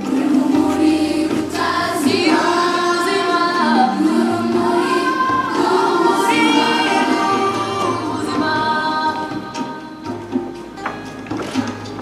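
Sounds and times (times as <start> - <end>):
children's choir singing: 0.0 - 10.4.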